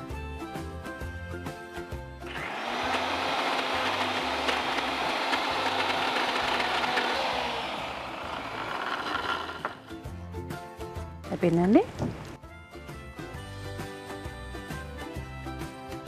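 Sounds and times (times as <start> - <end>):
mixer grinder motor running: 2.2 - 10.0.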